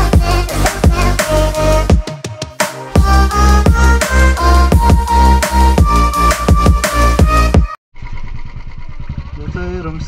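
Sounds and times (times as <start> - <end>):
motorcycle engine running: 7.6 - 10.0.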